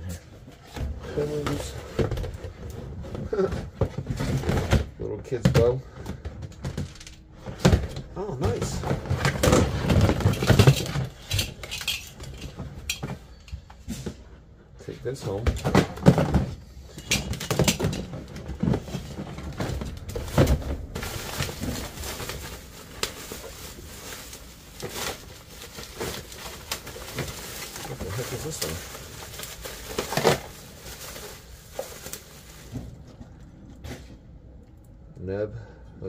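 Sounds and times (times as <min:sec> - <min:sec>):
objects knocking and clunking: 0:00.3 - 0:14.4, 0:15.2 - 0:35.0
plastic bags rustling: 0:05.7 - 0:13.3, 0:15.0 - 0:33.2.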